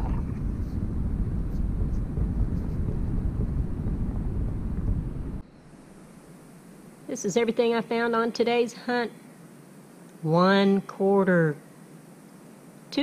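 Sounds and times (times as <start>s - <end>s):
wind buffeting microphone: 0.0s - 5.4s.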